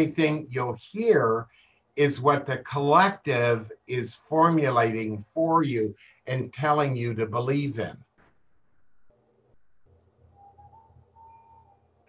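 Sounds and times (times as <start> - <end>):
low hum: 8.2 - 12.0.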